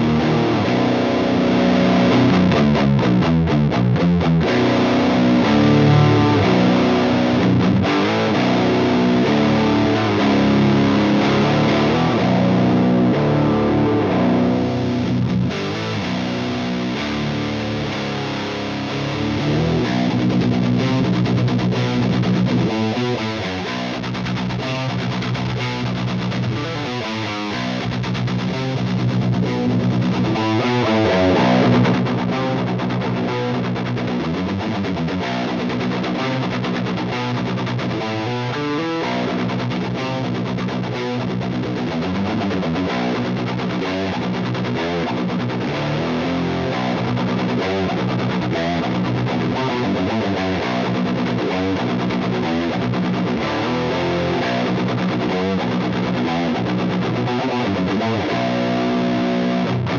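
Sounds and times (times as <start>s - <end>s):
distorted electric guitar: 0.0s - 59.9s.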